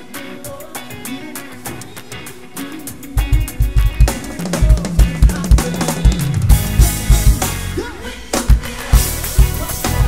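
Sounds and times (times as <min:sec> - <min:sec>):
bass line: 0:03.2 - 0:10.0.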